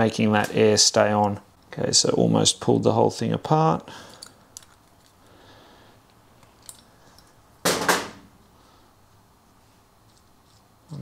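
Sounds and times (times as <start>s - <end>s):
handling small metal parts: 4.1s - 5.3s, 6.0s - 7.6s.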